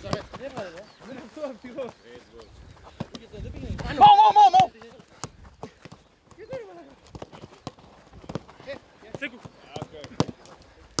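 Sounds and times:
boot kicking football: 0:00.0 - 0:00.8
faint shouts of players: 0:03.8 - 0:04.8.

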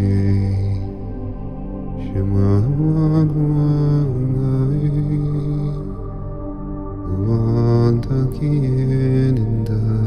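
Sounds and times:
sustained background music: 0:00.0 - 0:10.0.

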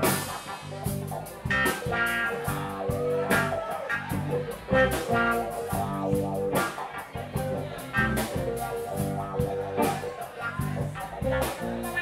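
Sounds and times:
bass: 0:00.0 - 0:12.0
drum kit and cymbals: 0:00.0 - 0:12.0
electric guitar: 0:00.0 - 0:12.0
keyboards: 0:00.0 - 0:12.0.

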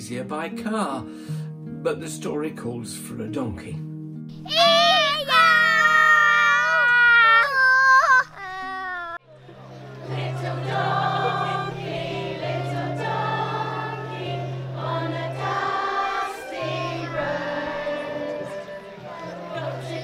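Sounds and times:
child shouting: 0:04.4 - 0:09.2
choir singing with accompaniment: 0:09.5 - 0:20.0.

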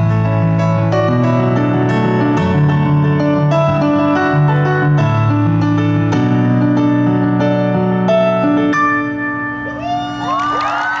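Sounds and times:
crowd cheering: 0:09.6 - 0:11.0
whoops and shouts: 0:09.6 - 0:11.0.

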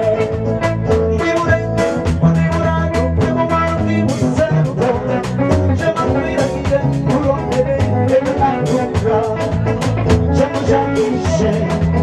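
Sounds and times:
live band music: 0:00.0 - 0:12.0
man singing into a microphone: 0:00.0 - 0:12.0.

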